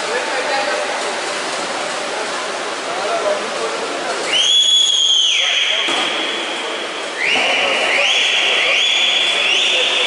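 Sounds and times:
distant voices: 0.0 - 10.0
swimmers splashing: 0.0 - 10.0.

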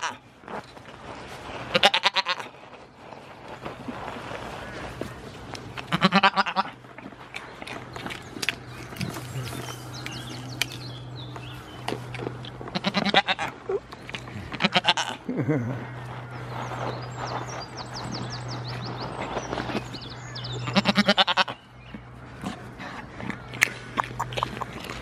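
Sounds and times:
steady low hum: 0.0 - 25.0
goats bleating: 1.7 - 2.5, 5.9 - 6.8, 12.7 - 13.6, 14.4 - 16.0, 20.6 - 21.6.

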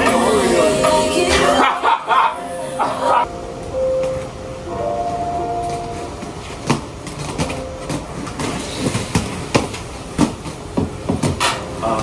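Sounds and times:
roller skate wheels rolling on concrete: 4.9 - 12.0.

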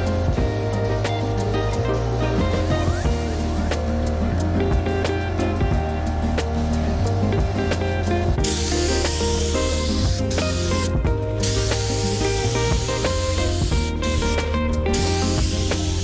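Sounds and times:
paint spray gun hissing: 0.0 - 4.2, 8.4 - 16.0
background music with bass: 0.0 - 16.0.

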